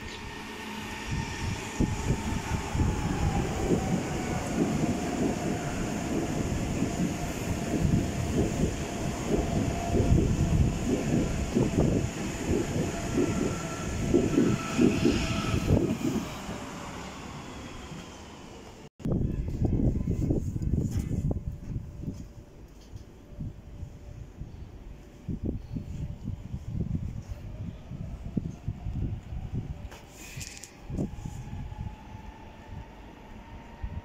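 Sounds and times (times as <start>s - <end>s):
train motor whine: 0.0s - 18.8s.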